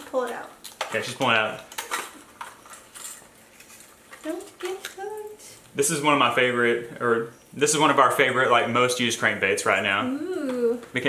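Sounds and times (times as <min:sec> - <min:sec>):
plastic crinkling: 0:00.1 - 0:05.3.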